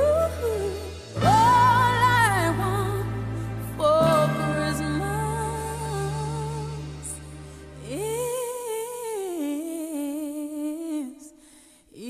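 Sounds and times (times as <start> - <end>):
woman singing long note: 1.2 - 7.2.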